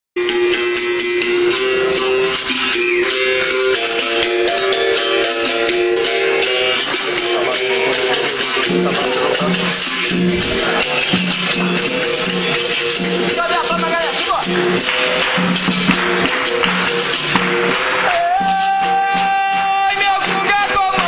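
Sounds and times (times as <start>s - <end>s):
berimbau playing: 0.2s - 21.0s.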